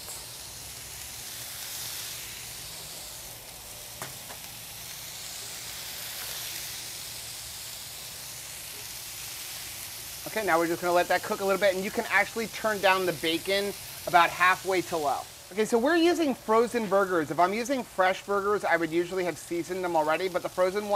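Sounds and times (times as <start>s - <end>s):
bacon sizzling on griddle: 0.0s - 20.9s.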